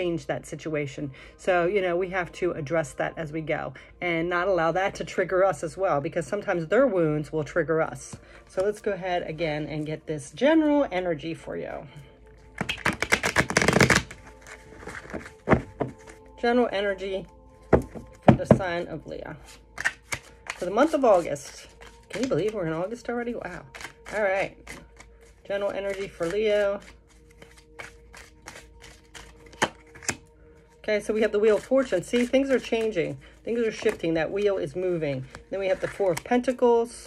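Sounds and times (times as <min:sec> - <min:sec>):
cards riffle shuffled: 0:12.5 - 0:16.2, 0:19.5 - 0:22.6, 0:23.4 - 0:30.2, 0:31.5 - 0:32.9, 0:33.5 - 0:34.0
cards tapping: 0:12.6 - 0:16.2, 0:19.8 - 0:20.8, 0:25.7 - 0:30.2.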